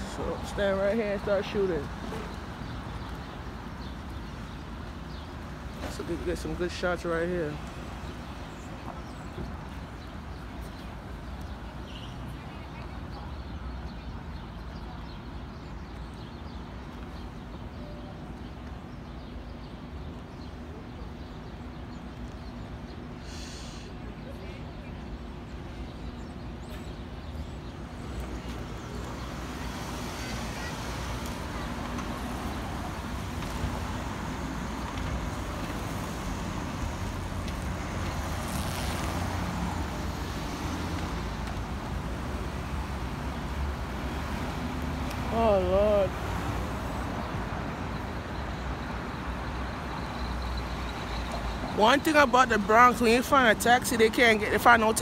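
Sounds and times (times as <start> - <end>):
cars and bus passing: 0.0 - 55.0.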